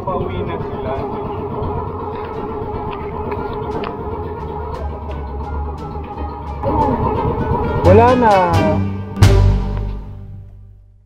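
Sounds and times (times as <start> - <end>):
boat engine droning: 0.0 - 10.7.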